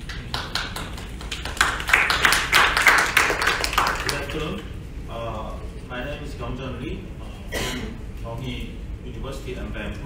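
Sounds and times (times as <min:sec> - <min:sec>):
audience applauding: 0:00.0 - 0:04.3.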